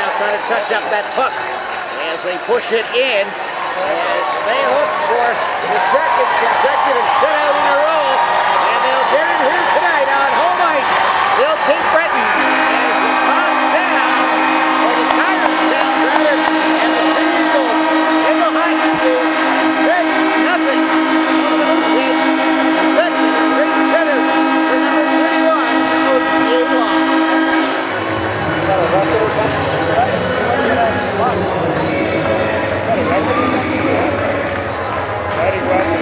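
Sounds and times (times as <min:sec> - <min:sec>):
crowd cheering: 0:00.0 - 0:36.0
arena horn sounding a chord: 0:11.4 - 0:36.0.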